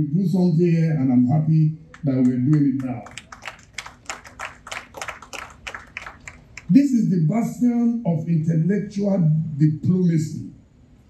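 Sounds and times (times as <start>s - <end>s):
audience clapping lightly: 1.9s - 6.7s.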